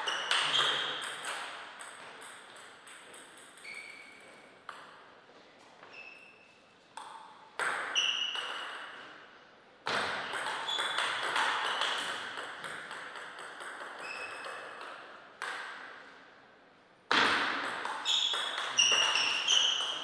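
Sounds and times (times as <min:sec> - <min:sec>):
table tennis ball hits: 0:00.0 - 0:05.1, 0:07.0 - 0:09.2, 0:09.8 - 0:16.1, 0:17.1 - 0:20.0.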